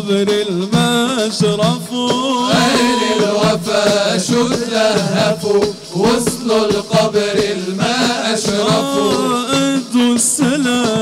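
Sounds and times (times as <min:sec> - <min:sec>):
frame drum beats: 0:00.0 - 0:11.0
male voices singing: 0:00.0 - 0:11.0.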